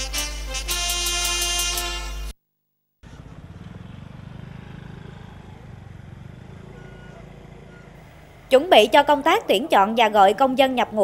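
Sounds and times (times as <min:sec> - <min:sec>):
motor scooter passing: 0:03.0 - 0:11.0.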